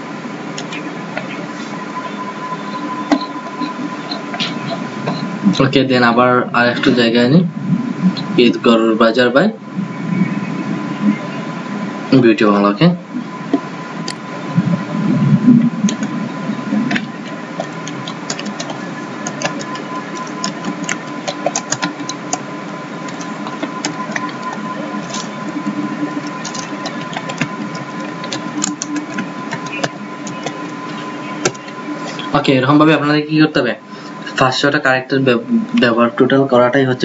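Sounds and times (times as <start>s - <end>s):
steady electrical hum: 0.0s - 37.0s.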